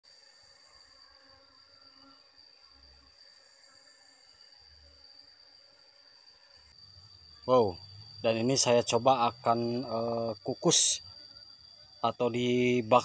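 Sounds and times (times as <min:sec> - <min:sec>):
high-pitched insect chirring: 0:00.1 - 0:13.0
thin hiss: 0:03.1 - 0:07.1.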